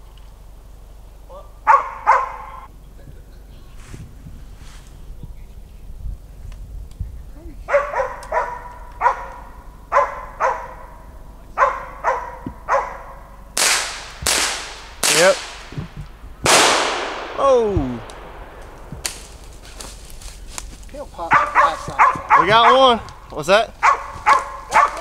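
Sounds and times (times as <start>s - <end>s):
dog barking: 1.3s - 2.7s, 7.7s - 13.4s, 21.3s - 23.0s, 23.8s - 25.0s
rifle shots with echo: 13.6s - 19.8s.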